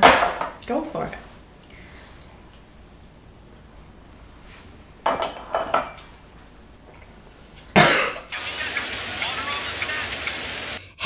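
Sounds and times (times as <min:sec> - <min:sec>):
woman coughing: 0:07.8 - 0:08.2.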